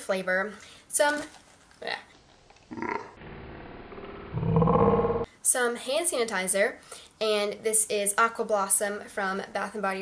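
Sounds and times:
deep growl-like processed sound: 2.7s - 5.3s.

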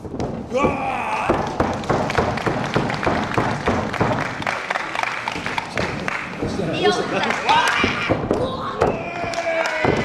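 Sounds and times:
audience clapping: 1.4s - 8.1s, 9.0s - 10.0s.

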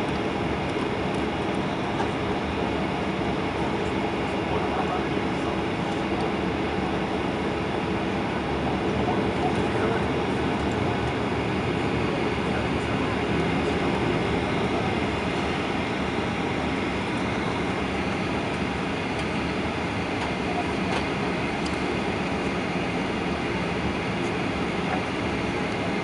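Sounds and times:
jet engines running at taxi power: 0.0s - 26.0s
wheels rumbling on taxiway: 0.0s - 26.0s.

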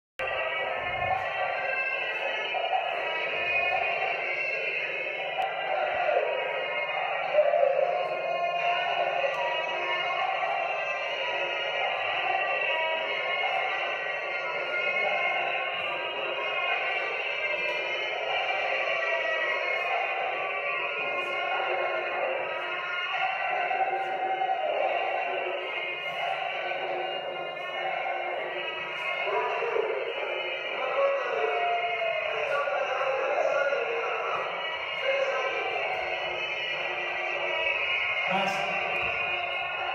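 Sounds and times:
thin music with singing voice: 0.2s - 39.9s.

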